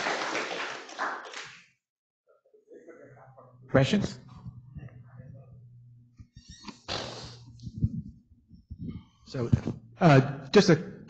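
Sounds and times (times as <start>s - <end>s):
audience applause: 0.0s - 1.6s.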